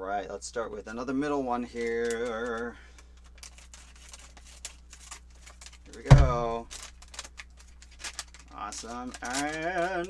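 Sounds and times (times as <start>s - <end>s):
foil bag crinkling: 1.6s - 10.0s.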